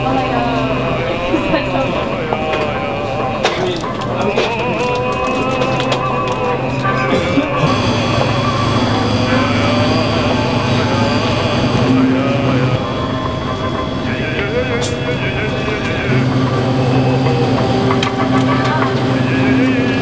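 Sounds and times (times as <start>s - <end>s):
drink cooler electrical hum: 0.0s - 20.0s
faint voices: 0.0s - 20.0s.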